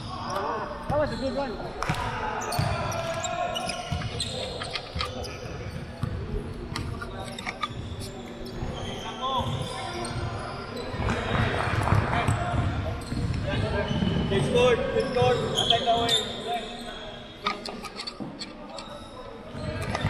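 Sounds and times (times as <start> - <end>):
people chattering: 0.0 - 20.0.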